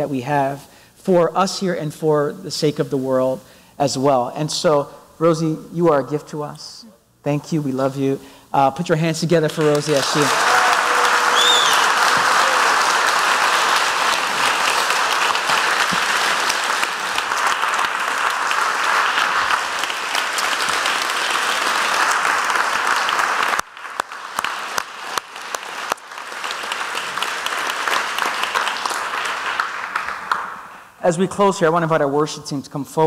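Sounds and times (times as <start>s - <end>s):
crowd applauding: 9.5s - 30.8s.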